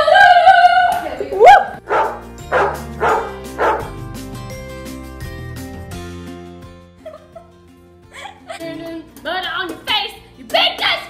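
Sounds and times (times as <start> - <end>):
background music sustained notes: 0.0 - 11.0.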